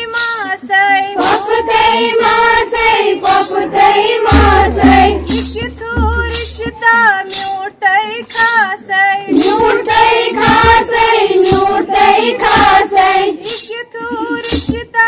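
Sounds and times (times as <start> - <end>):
steady beat of sharp strokes: 1.2 - 6.9, 9.3 - 13.7.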